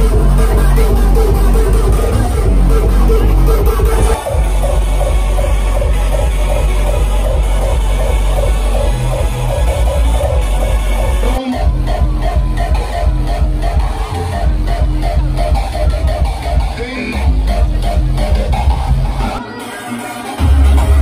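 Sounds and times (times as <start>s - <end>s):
electronic dance music: 0.0s - 21.0s.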